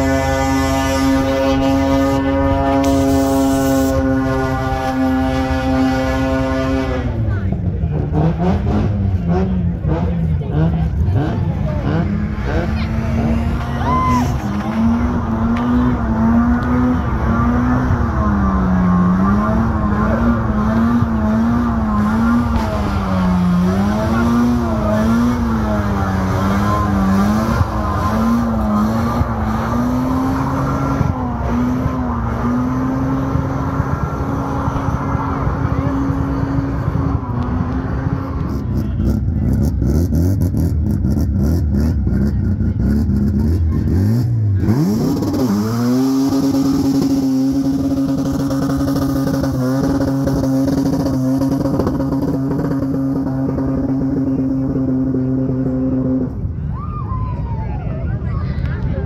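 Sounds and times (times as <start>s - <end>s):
rotary engine revving high: 0.0s - 56.6s.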